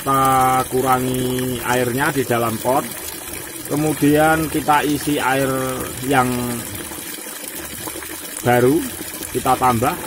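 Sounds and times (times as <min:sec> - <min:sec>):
tap water pouring into tub: 0:00.0 - 0:10.0.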